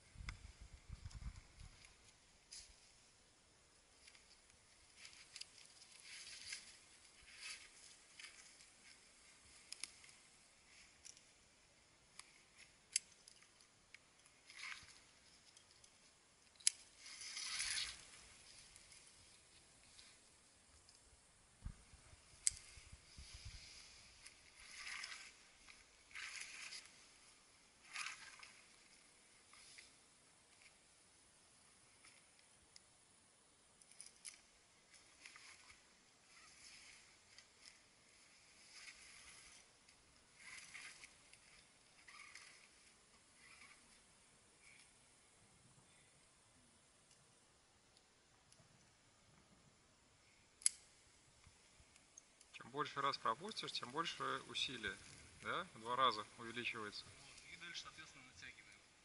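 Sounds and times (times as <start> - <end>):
rope rustling: 3.9 - 31.0, 33.7 - 45.3.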